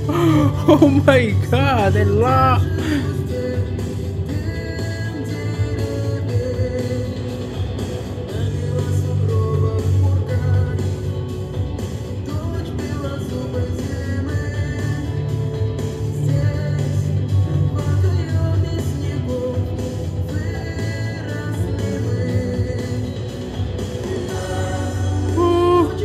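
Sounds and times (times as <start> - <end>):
instrumental backing: 0.0 - 26.0
woman singing: 24.3 - 26.0.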